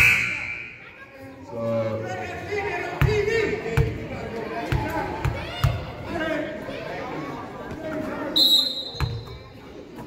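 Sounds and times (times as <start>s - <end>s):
voices echoing in hall: 0.0s - 10.0s.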